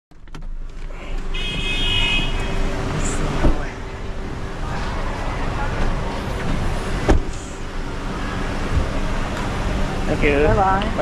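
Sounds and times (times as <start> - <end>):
low engine hum: 0.1 - 11.0
road traffic: 0.1 - 11.0
sharp thump: 7.0 - 7.4.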